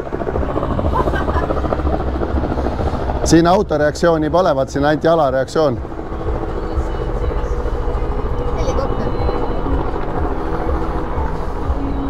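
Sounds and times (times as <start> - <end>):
low mechanical throbbing drone: 0.0 - 12.0
voice: 3.2 - 5.8, 8.5 - 9.4.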